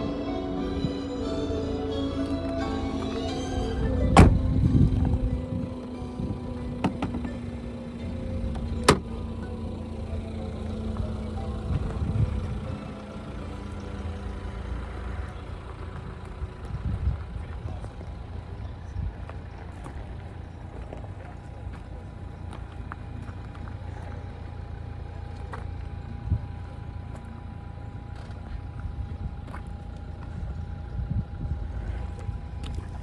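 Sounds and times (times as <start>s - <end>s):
low rumble: 0.0s - 33.0s
car door shutting: 2.2s - 5.2s, 6.4s - 7.7s, 8.4s - 9.4s.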